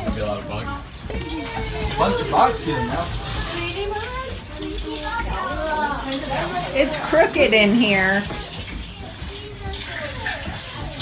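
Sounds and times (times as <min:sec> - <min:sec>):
children's voices: 0:00.0 - 0:11.0
unclear talk: 0:00.0 - 0:11.0.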